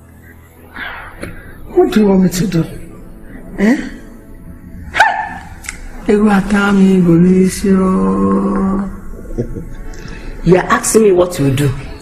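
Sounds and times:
dog barking: 4.9s - 5.5s.

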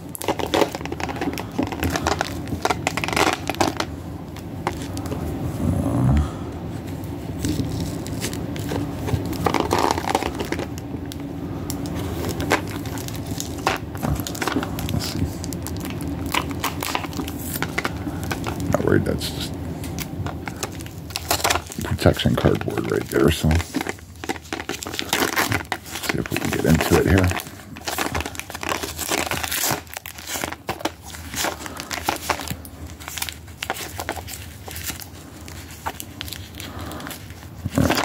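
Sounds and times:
tape and wrapping crinkling: 0.0s - 5.4s, 6.6s - 38.0s
letter opener scraping package: 20.3s - 38.0s.

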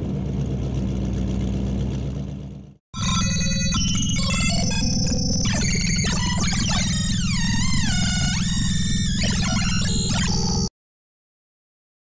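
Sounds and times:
synthesizer tone gliding: 3.0s - 10.7s.

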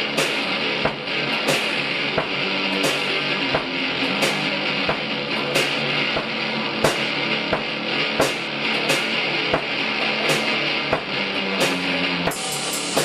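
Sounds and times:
drum and cymbal hits: 0.0s - 13.0s
electric guitar: 0.0s - 13.0s.

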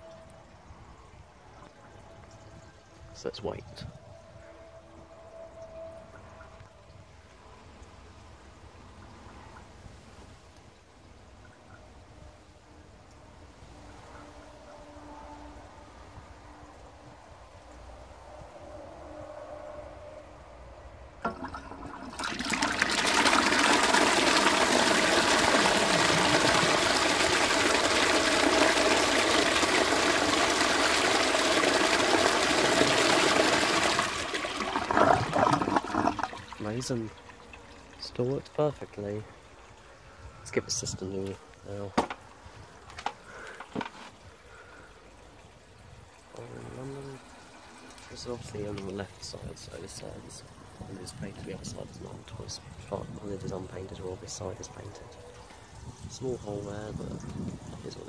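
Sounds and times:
water rushing into urinal: 21.2s - 38.3s, 43.2s - 52.0s.

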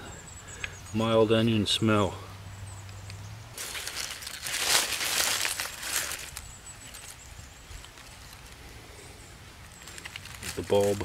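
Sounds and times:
low outdoor background: 0.0s - 11.0s
soil and leaves rustling: 0.0s - 11.0s.

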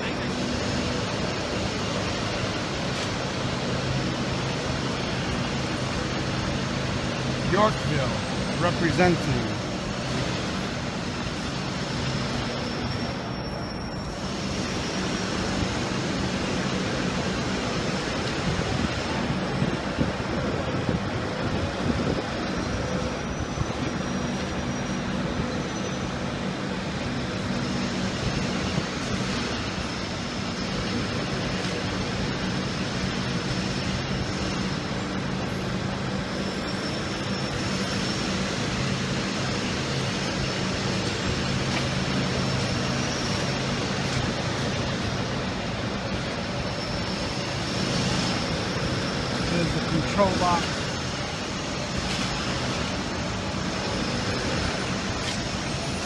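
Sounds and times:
city street traffic: 0.0s - 56.0s
diesel engine idling: 0.0s - 56.0s.

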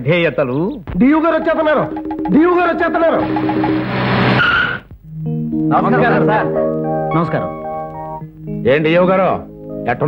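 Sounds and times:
background music: 0.8s - 10.0s
person speaking: 1.0s - 3.5s
tyres skidding with squeal: 4.2s - 4.8s.

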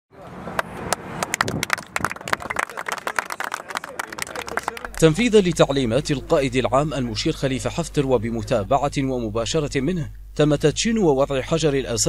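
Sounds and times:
people applauding: 0.6s - 5.7s
voices talking: 2.1s - 12.0s.

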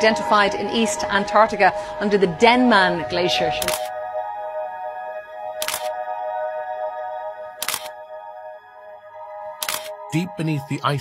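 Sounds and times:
sustained music chord: 0.0s - 11.0s.

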